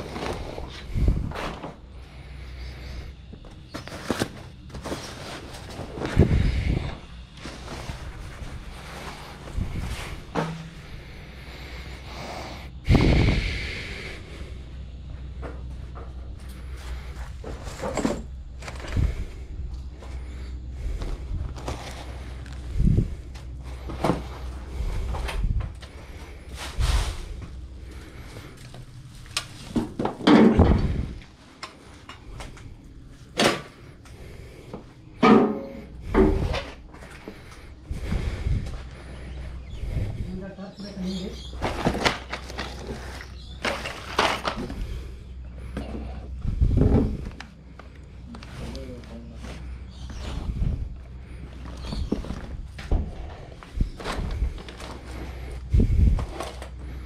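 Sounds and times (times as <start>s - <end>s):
handling rustles: 3.3s - 6.5s.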